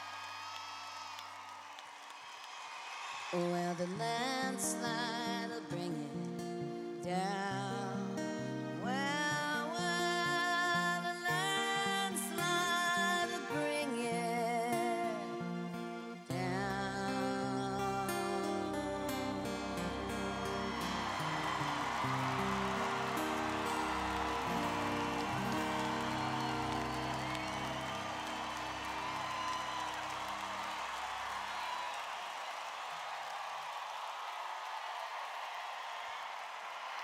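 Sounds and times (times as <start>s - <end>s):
crowd applause and cheering: 0.0s - 3.7s, 18.2s - 37.0s
live band sustained chords: 15.0s - 31.4s
whistles from crowd: 20.0s - 34.2s.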